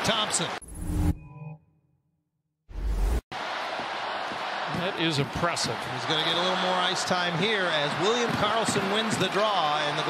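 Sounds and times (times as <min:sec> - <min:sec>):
arena crowd noise: 0:03.3 - 0:10.0.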